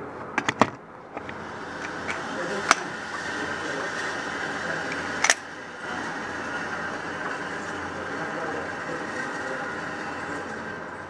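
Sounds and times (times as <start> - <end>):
ventilation fans rushing: 0.0 - 11.0.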